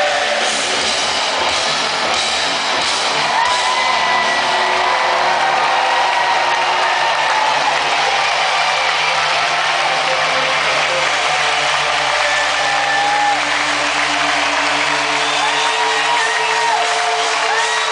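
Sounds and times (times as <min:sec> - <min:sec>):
crowd shouting and whooping: 0:02.8 - 0:17.9.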